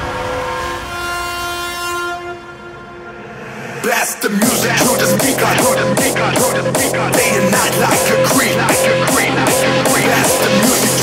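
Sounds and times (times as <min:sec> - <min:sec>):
held synthesizer chord: 0:04.4 - 0:11.0.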